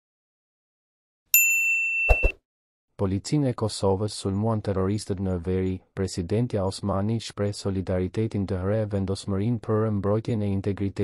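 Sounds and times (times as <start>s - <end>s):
notification bell ding: 1.4s - 2.4s.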